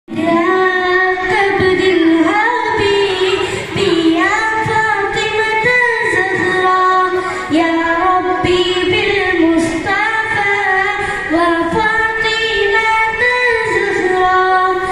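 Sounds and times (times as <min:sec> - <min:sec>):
boy singing into a microphone: 0:00.1 - 0:14.9.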